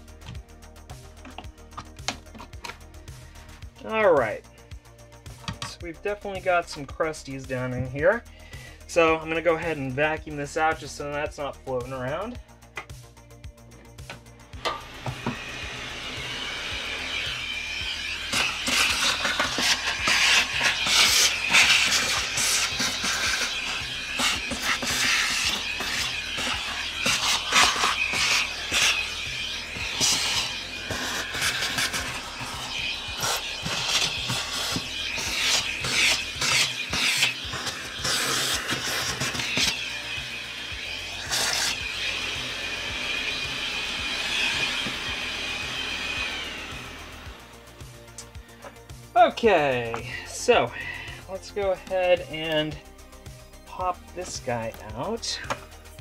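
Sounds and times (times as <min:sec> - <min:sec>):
vacuum cleaner sucking: 0:14.6 - 0:50.0.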